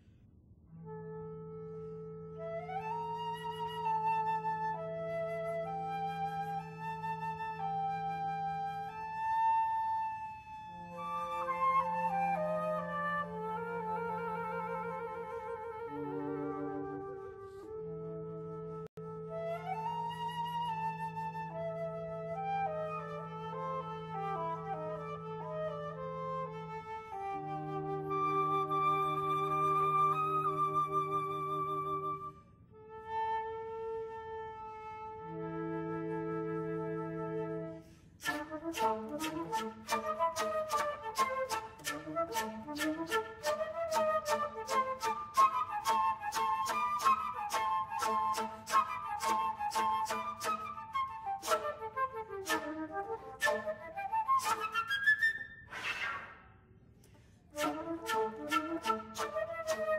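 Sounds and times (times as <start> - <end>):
flute quartet playing: 0.7 - 55.7, 57.2 - 59.9.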